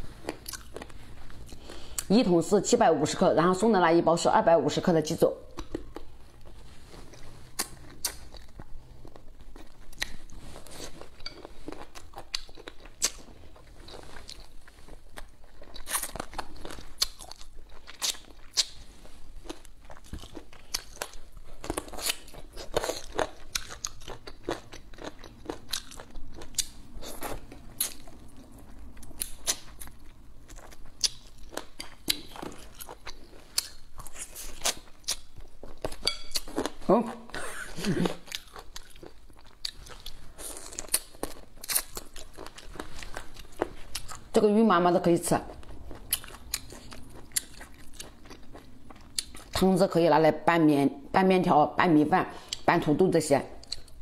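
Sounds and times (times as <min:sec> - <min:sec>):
close chewing with wet crunches: 0:05.5 - 0:36.8, 0:38.2 - 0:44.3, 0:45.6 - 0:49.6.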